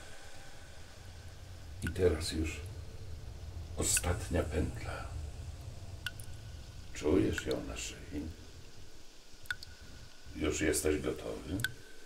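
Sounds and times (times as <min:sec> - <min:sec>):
faint low hum with hiss: 0:00.0 - 0:12.0
man speaking: 0:01.7 - 0:02.8, 0:03.6 - 0:05.5, 0:06.9 - 0:08.4, 0:10.3 - 0:11.7.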